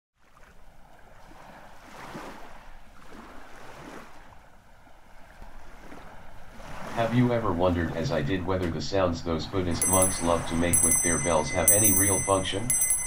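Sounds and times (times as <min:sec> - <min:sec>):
ocean surf washing on beach: 0:00.3 - 0:13.0.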